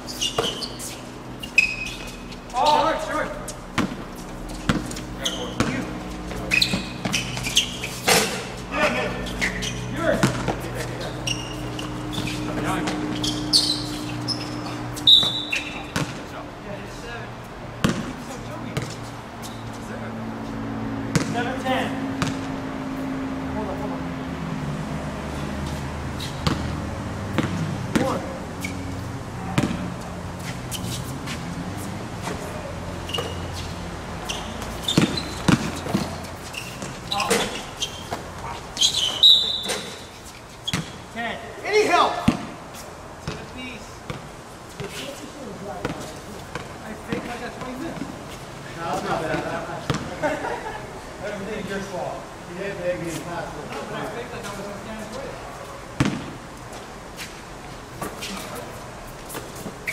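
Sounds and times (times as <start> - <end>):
players' footfalls: 0.3 - 16.3, 25.6 - 41.0
basketball bouncing on hard court: 3.8 - 4.0, 4.7 - 8.3, 9.4 - 10.6, 11.3 - 16.2, 17.8 - 19.0, 21.1 - 21.4, 22.2 - 22.5, 26.3 - 28.8, 29.4 - 30.1, 34.2 - 40.0, 40.7 - 41.0, 42.2 - 42.6, 44.1 - 45.0, 45.8 - 48.1, 49.9 - 50.1, 56.0 - 56.4.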